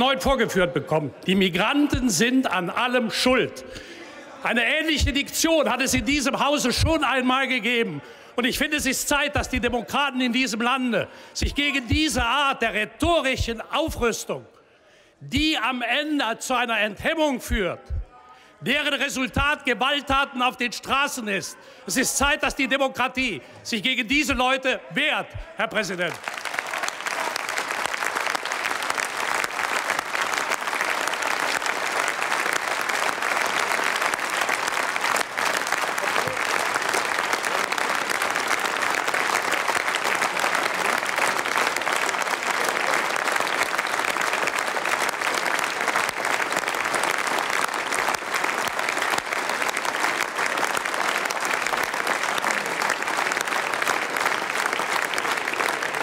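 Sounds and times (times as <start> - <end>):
crowd applauding: 26.0 - 56.0.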